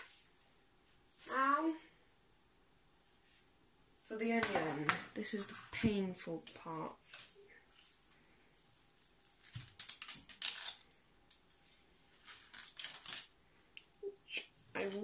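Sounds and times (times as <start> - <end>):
plastic mesh bag crinkling: 7.0 - 13.4.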